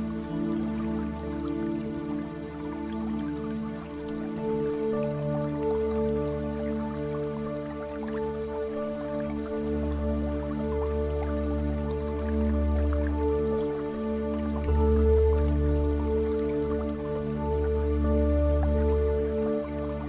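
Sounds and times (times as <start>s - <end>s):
ambient new-age music: 0.0s - 20.0s.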